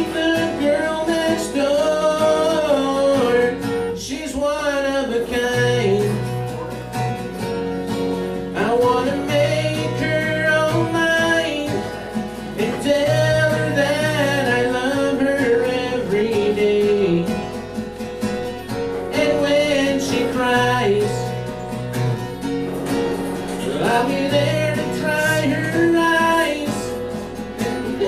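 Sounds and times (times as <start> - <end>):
acoustic guitar: 0.0 - 28.0
man singing country song: 0.0 - 28.0.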